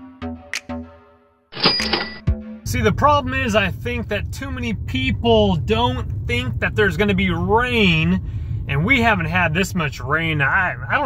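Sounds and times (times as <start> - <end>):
electronic music: 0.0 - 1.2
cash register cha-ching: 1.6 - 2.3
car road noise: 2.7 - 11.0
man talking: 2.7 - 11.0.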